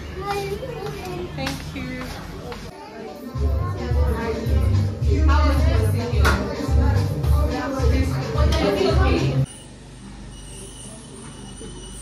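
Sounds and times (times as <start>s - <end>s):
high-pitched whine: 9.5s - 12.0s.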